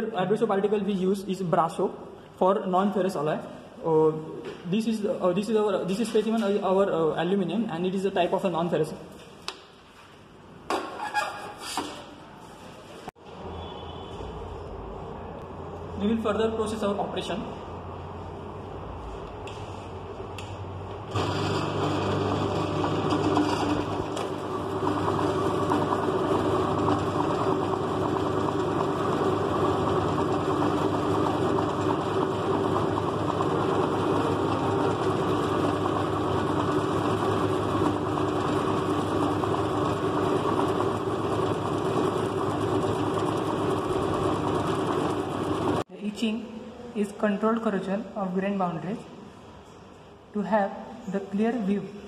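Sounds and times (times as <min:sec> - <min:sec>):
electric motor humming: 0:21.1 - 0:45.8
polishing disc spinning: 0:21.1 - 0:45.8.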